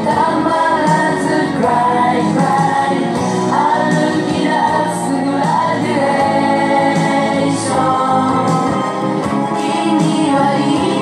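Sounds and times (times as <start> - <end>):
pop song with sung vocals: 0.0 - 11.0.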